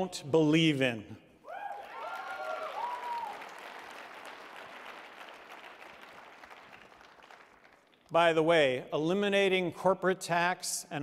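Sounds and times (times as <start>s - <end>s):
voices whooping: 1.5s - 3.5s
audience applauding: 1.7s - 8.1s.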